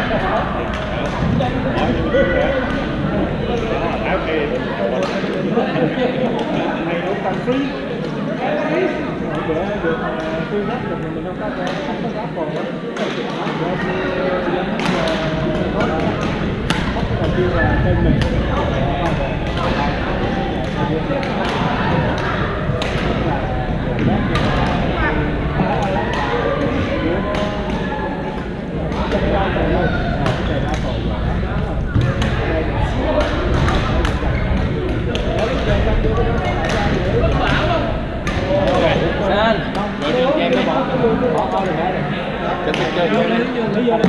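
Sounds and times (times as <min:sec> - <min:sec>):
chatter of many players: 0:00.0 - 0:44.0.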